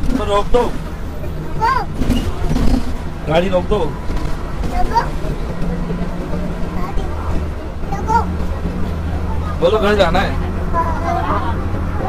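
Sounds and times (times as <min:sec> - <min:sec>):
bus engine droning: 0:00.0 - 0:12.0.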